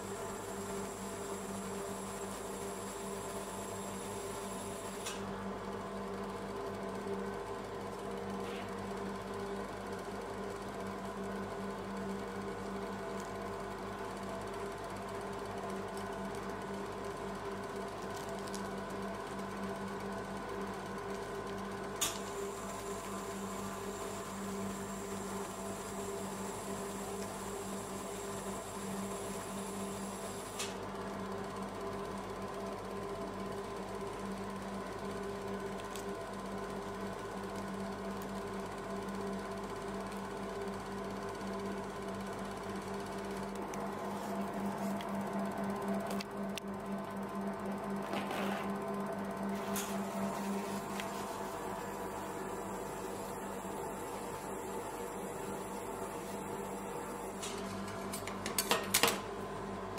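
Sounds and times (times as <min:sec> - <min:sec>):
refrigeration unit hum: 0:00.0 - 0:59.9.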